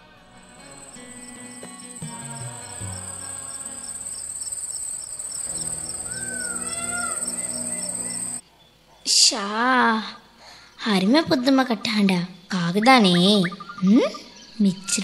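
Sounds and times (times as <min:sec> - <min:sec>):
soft music: 0:00.0 - 0:08.4
high-pitched cricket trill: 0:00.5 - 0:08.4.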